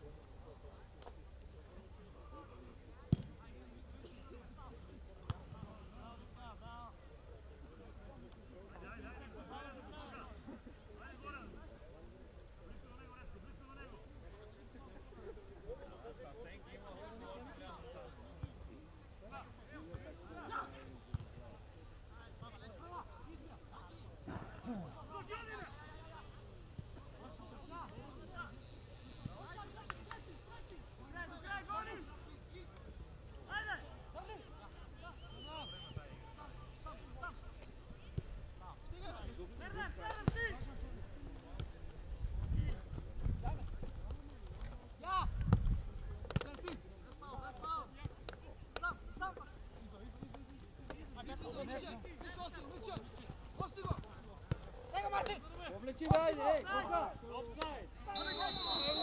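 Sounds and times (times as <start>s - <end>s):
football kicked thud: 3.1s - 3.4s
players shouting at a distance: 55.0s - 59.0s.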